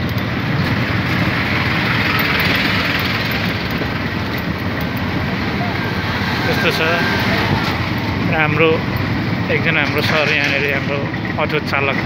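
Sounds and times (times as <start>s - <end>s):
auto-rickshaw engine and road noise: 0.0s - 12.0s
bus passing close: 0.0s - 12.0s.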